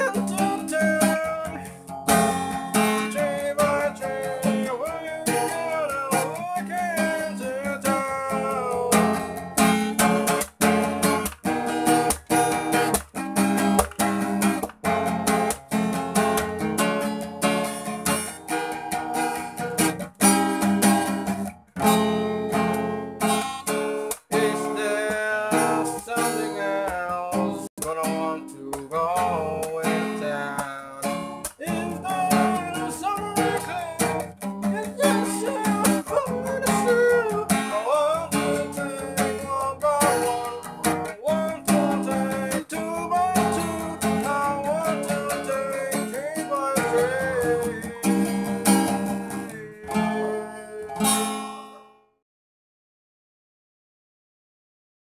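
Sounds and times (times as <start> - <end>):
acoustic guitar strumming: 0.0 - 52.1.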